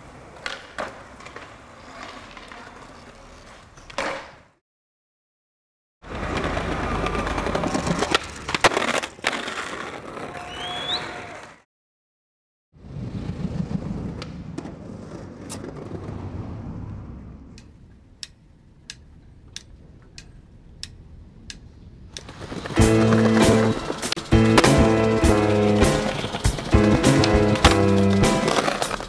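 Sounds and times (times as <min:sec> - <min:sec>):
skateboard wheels rolling on concrete: 0:00.0 - 0:04.6, 0:06.0 - 0:11.6, 0:12.8 - 0:29.0
skateboard popping and landing: 0:00.1 - 0:04.6, 0:06.1 - 0:10.5, 0:22.2 - 0:29.0.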